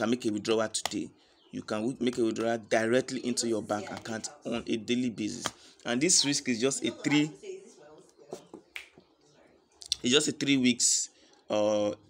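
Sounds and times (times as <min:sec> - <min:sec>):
man speaking: 0:00.0 - 0:07.4, 0:09.8 - 0:12.0
mouth clicks and lip noises: 0:08.7 - 0:09.2, 0:09.8 - 0:10.0.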